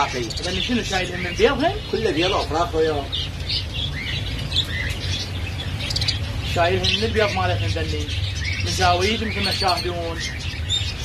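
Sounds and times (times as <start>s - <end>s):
budgerigars chirping: 0.0s - 11.0s.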